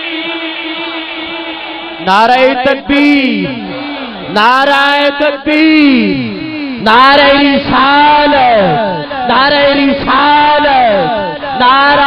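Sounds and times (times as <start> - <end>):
man chanting a long note: 0.0 - 12.0.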